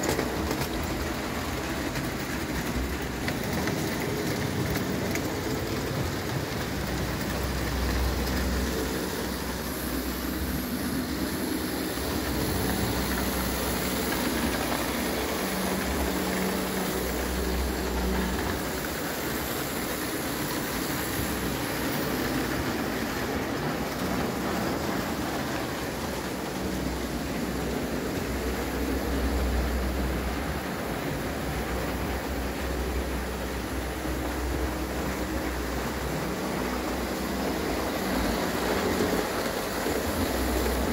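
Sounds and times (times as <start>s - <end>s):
metal wheels clattering on rails: 0.0s - 40.9s.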